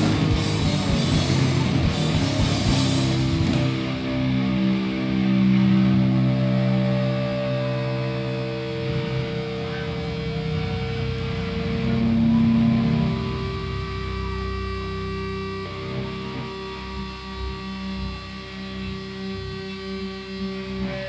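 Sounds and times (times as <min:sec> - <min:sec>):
electric bass sustained notes: 0:00.0 - 0:21.0
electric guitar sustained notes: 0:00.0 - 0:21.0.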